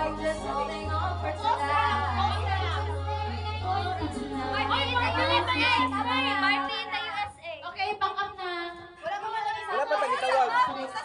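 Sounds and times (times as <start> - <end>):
excited group chatter: 0.0 - 11.0.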